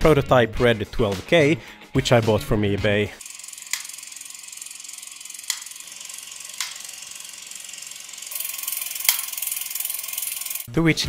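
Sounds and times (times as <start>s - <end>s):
cine camera whirring: 3.2s - 10.7s.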